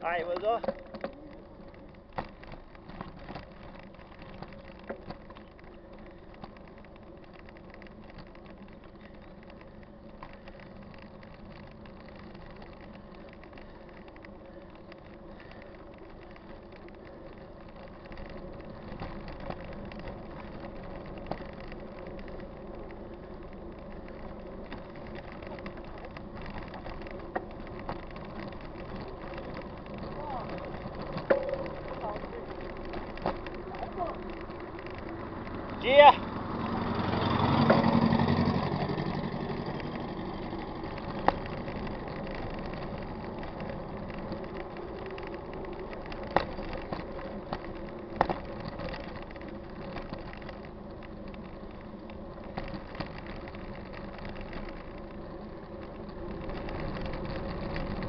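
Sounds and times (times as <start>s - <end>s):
bike clicks and rattles: 0.0s - 58.0s
bike tyres rolling on pavement: 0.0s - 58.0s.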